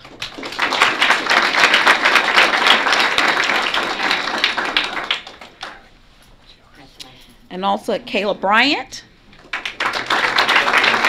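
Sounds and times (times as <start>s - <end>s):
audience applauding: 0.0s - 5.8s, 9.4s - 11.0s.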